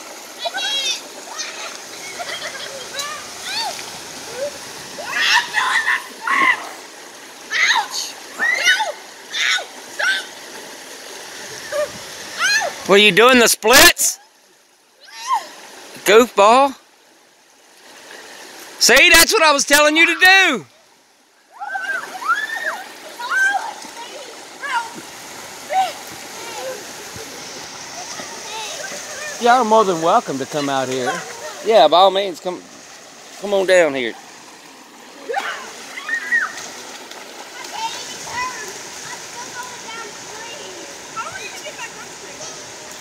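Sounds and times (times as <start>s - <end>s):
river rapids rushing: 0.0s - 14.2s, 17.9s - 20.6s, 21.5s - 43.0s
swimmers splashing: 0.0s - 14.2s, 17.7s - 20.7s, 21.5s - 43.0s
people shouting and squealing: 0.4s - 6.8s, 7.5s - 10.4s, 18.8s - 20.6s, 21.5s - 23.8s, 35.2s - 36.6s.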